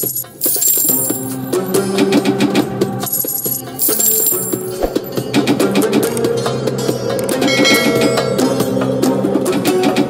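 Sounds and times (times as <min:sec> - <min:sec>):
coin-like jingling chime: 0:00.4 - 0:01.8, 0:03.1 - 0:05.2, 0:07.5 - 0:08.3.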